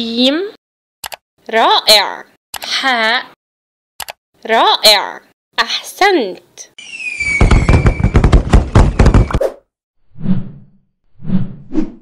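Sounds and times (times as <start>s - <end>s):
firework crackle and pops: 6.8s - 8.9s
firework whistle: 6.8s - 9.4s.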